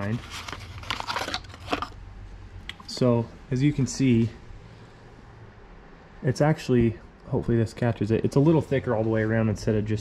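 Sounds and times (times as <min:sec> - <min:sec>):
cardboard box and paper rustling: 0:00.0 - 0:02.0.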